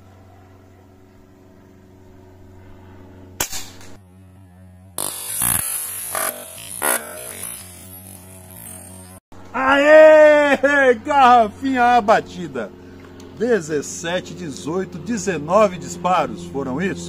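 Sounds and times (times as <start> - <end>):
air rifle shot: 3.4 - 4.0.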